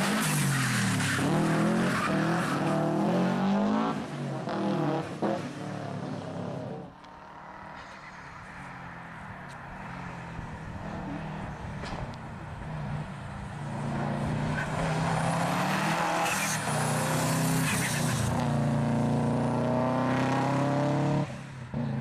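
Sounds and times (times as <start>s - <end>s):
rally car engine revving: 0.0s - 8.2s, 10.5s - 22.0s.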